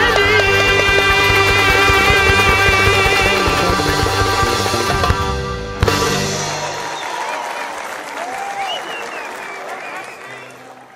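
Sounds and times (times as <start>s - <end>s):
band's final chord: 0.0s - 6.9s
audience cheering: 5.8s - 10.9s
audience applauding: 6.2s - 10.9s.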